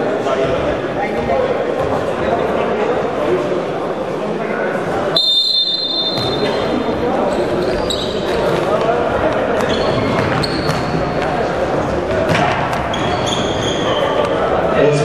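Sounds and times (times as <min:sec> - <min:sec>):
shouting and chatter: 0:00.0 - 0:15.0
shoes squeaking on court: 0:05.8 - 0:08.8, 0:09.5 - 0:11.5, 0:12.1 - 0:14.5.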